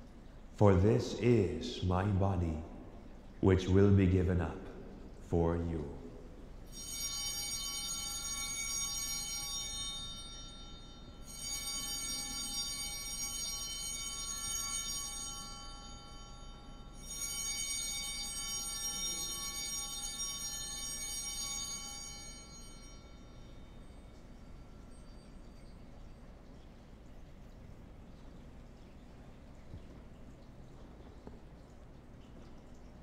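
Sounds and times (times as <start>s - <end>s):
altar bell ringing: 6.7s - 26.5s.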